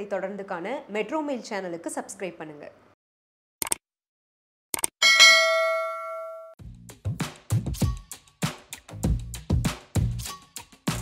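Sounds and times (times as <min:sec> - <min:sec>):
notification bell ding: 0:05.0 - 0:06.6.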